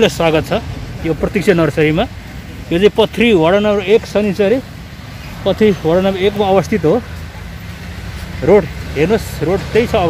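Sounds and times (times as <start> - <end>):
man speaking: 0.0 - 7.3, 8.3 - 10.0
highway traffic hum: 0.0 - 10.0.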